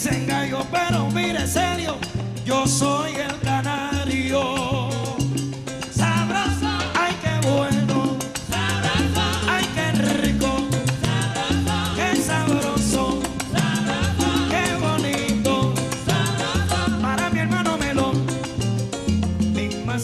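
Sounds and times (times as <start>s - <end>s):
salsa band playing: 0.0s - 20.0s.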